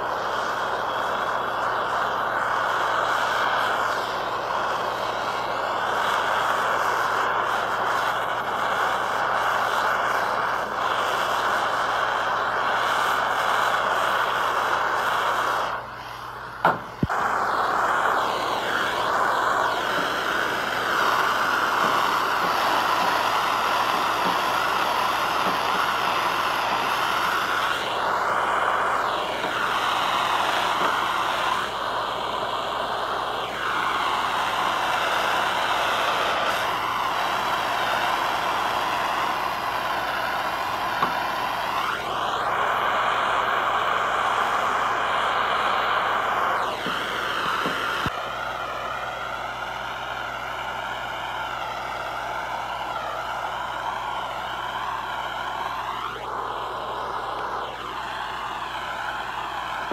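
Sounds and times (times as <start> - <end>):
gas torch flame hissing: 0.0 - 59.9.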